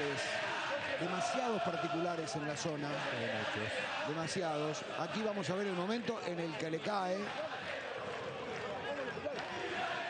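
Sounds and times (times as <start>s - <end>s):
stadium crowd shouting and talking: 0.0s - 10.0s.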